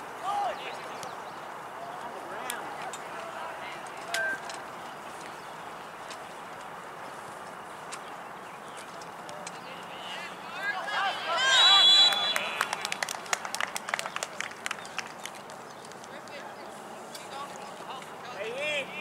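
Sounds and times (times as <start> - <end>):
players shouting: 0.2 - 0.9, 9.9 - 13.1
referee's whistle blast: 11.4 - 12.6.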